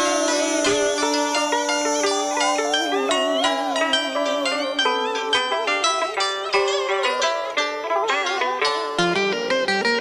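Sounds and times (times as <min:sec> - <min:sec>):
plucked string instruments melody: 0:00.0 - 0:10.0.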